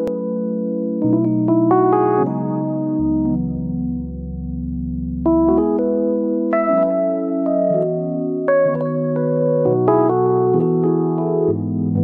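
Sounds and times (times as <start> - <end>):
piano-like keyboard chords: 0.0 - 12.0.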